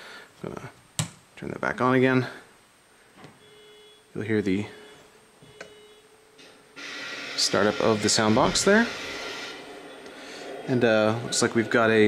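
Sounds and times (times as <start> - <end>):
steady hiss: 6.4 - 12.0.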